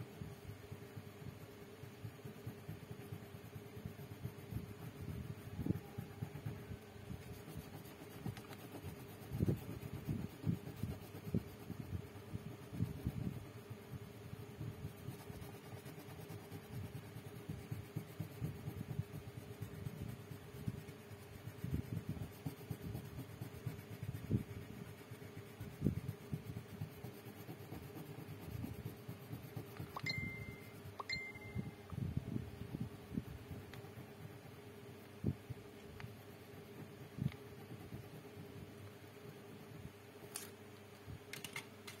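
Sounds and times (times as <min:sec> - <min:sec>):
pencil scratching on paper: 0:00.7 - 0:31.0, 0:33.0 - 0:40.0
high ringing pings: 0:30.0 - 0:31.8.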